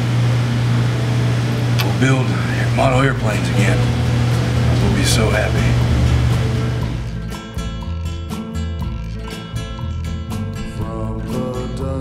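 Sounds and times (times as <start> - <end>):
steady low hum: 0.0 - 8.4.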